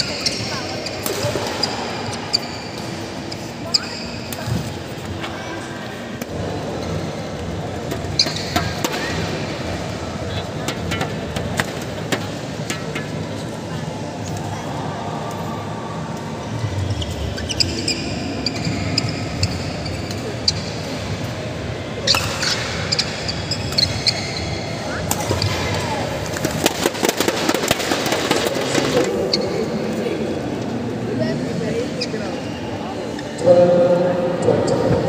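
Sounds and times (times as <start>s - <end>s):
shoes squeaking on court floor: 0.0s - 5.2s, 16.8s - 21.0s, 22.0s - 26.6s
murmur of voices: 0.0s - 35.0s
rackets hitting shuttlecock: 25.1s - 28.9s.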